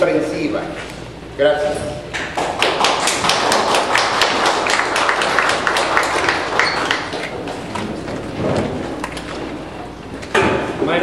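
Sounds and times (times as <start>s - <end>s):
people clapping in applause: 2.1s - 8.2s.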